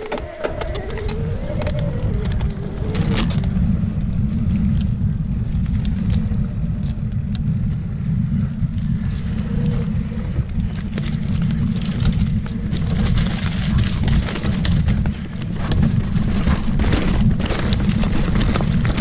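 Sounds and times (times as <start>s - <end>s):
bike clicks and rattles: 0.0s - 19.0s
wind rumbling on microphone: 0.0s - 19.0s.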